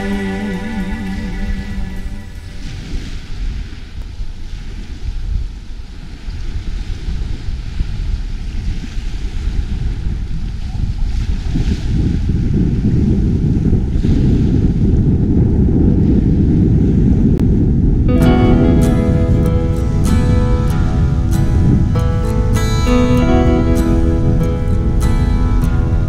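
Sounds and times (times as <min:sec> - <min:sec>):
sea waves: 0:00.0 - 0:14.8, 0:18.1 - 0:26.0
low rumbling wind: 0:00.0 - 0:26.0.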